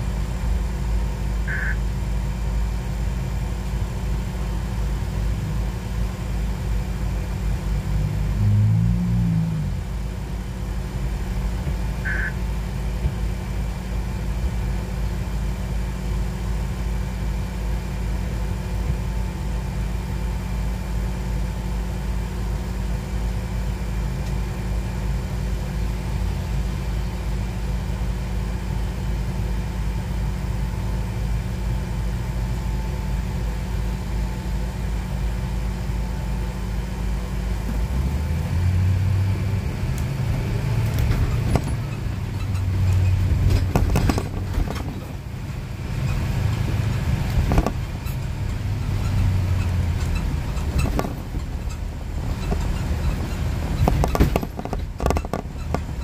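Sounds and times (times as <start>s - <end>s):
car engine idling: 0.0s - 56.0s
car accelerating: 7.3s - 10.2s.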